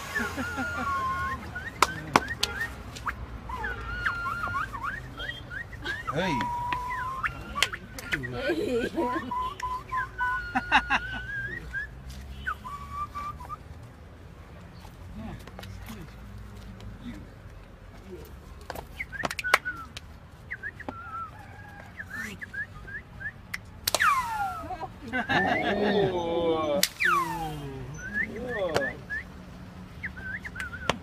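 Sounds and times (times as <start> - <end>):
whistled note: 0.0 - 8.4, 9.1 - 13.6, 22.0 - 24.8, 26.8 - 29.3
sharp clap or slap: 23.5 - 24.2.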